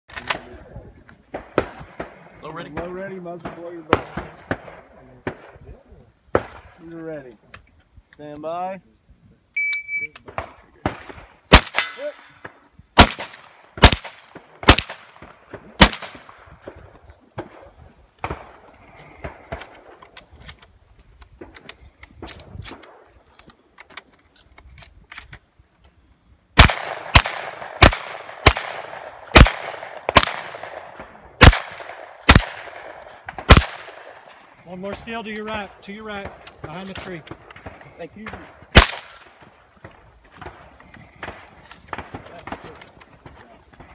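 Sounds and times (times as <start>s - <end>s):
shotgun shots: 1.3s - 5.7s, 10.2s - 20.0s, 26.6s - 43.9s.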